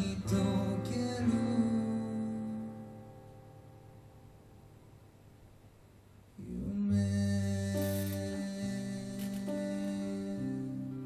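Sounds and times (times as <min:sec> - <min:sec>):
acoustic guitar strummed chords: 0:00.0 - 0:05.0, 0:06.6 - 0:11.0.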